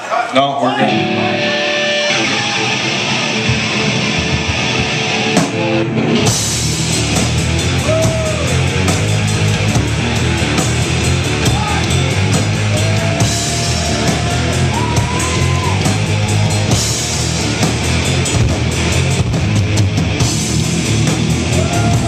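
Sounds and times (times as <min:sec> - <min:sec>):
heavy metal band playing: 0:00.7 - 0:22.0
pounding drums: 0:03.2 - 0:22.0.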